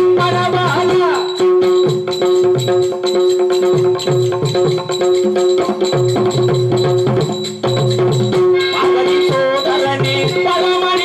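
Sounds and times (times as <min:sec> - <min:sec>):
hand drums in quick rhythm: 0:00.0 - 0:11.0.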